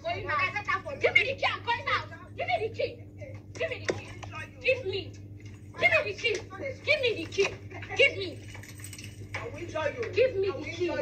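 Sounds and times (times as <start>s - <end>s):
raised voices arguing: 0.0s - 8.5s, 9.4s - 11.0s.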